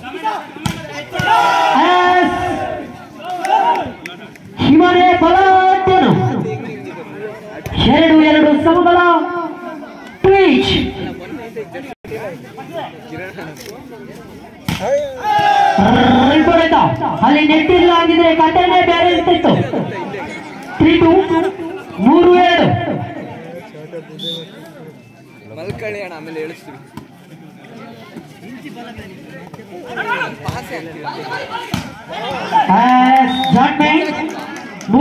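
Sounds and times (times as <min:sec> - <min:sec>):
crowd yelling: 0:00.0 - 0:04.0, 0:14.8 - 0:16.8
crowd voices: 0:00.0 - 0:35.0.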